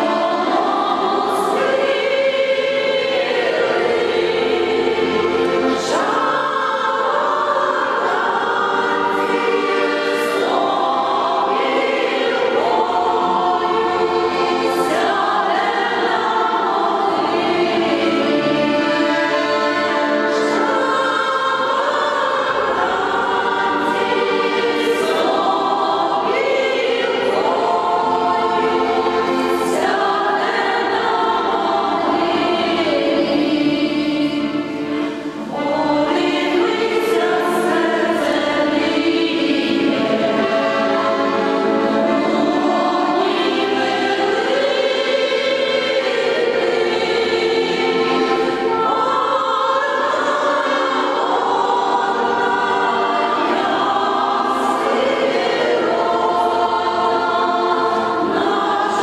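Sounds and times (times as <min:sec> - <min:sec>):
women's choir singing: 0:00.0 - 0:59.0.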